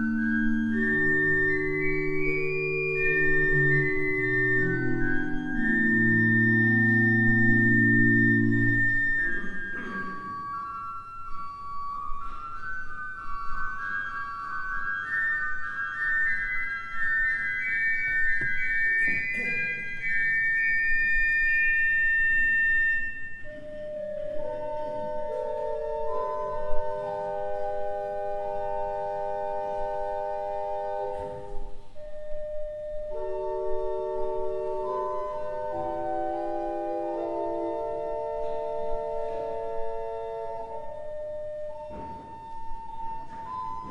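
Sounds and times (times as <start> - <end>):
church pipe organ playing a hymn: 0.0 - 43.9.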